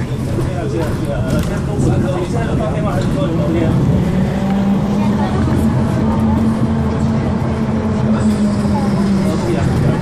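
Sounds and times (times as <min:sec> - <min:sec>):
bus engine drone: 0:00.0 - 0:10.0.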